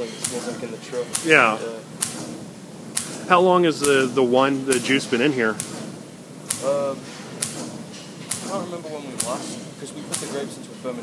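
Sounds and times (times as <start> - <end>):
compressed air bursts in liquid: 0.2 - 10.4.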